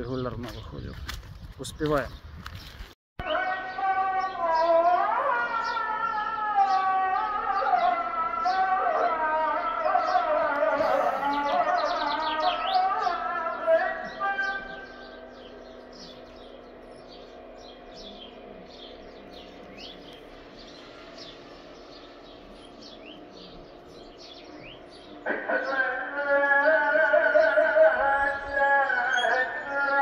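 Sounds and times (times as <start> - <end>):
birds chirping: 0.0 - 30.0
person singing ornamented phrase: 3.2 - 15.6, 25.2 - 30.0.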